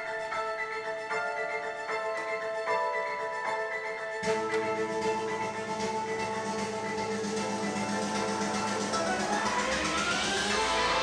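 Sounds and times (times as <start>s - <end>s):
instrumental music over car speakers: 4.2s - 11.0s.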